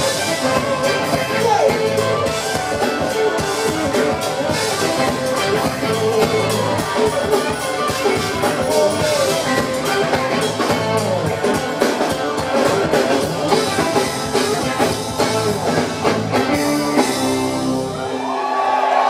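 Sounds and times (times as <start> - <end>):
live funk band playing: 0.0 - 18.3.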